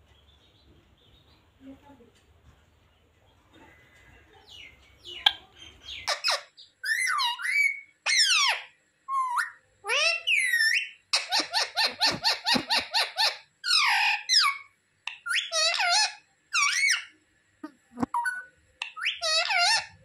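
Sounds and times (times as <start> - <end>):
parakeet calling and chattering: 3.7 - 20.0.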